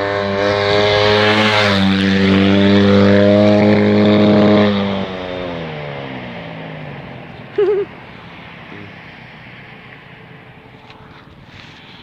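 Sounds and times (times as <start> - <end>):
distant motorbike engine: 0.0 - 12.0.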